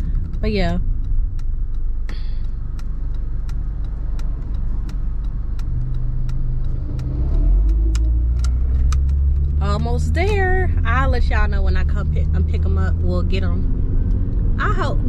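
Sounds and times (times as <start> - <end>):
light ticking: 0.0 - 10.6
car engine and road rumble: 0.0 - 15.0.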